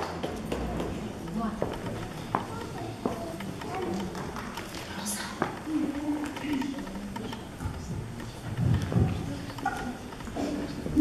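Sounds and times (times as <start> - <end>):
murmur of audience voices: 0.4 - 11.0.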